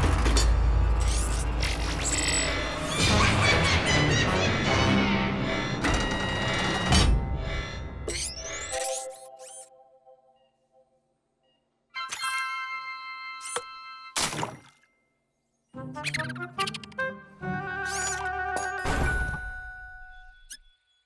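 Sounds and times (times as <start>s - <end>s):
cartoon music: 15.8s - 18.8s.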